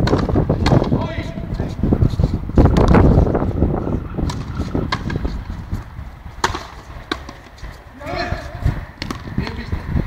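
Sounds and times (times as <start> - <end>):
ball struck sharp crack: 0.0 - 1.0, 4.2 - 5.3, 6.4 - 7.5, 9.0 - 9.6.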